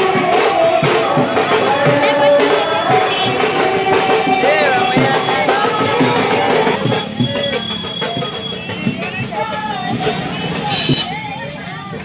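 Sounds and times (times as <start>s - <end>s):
crowd talking: 0.0s - 12.0s
street vehicle noise: 0.0s - 12.0s.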